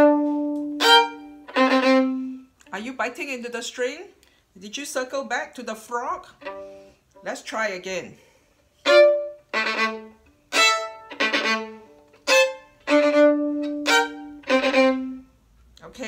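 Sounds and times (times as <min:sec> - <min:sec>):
violin playing double stops: 0:00.0 - 0:02.4.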